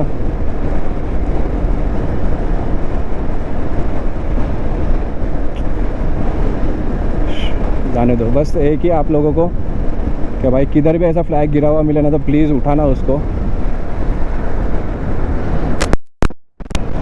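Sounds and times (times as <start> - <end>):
wind and road noise: 0.0 - 17.0.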